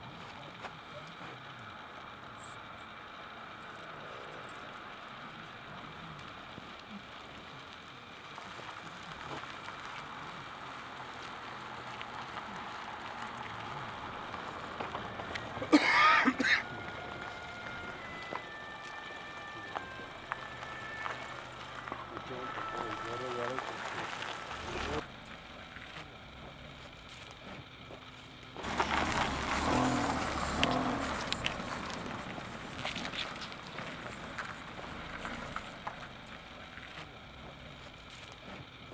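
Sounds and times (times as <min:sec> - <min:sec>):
men talking outdoors: 0:21.9 - 0:25.1.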